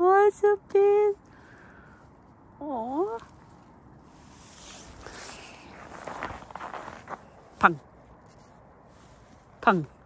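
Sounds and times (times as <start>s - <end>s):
footsteps crunching on snow: 4.1s - 7.6s.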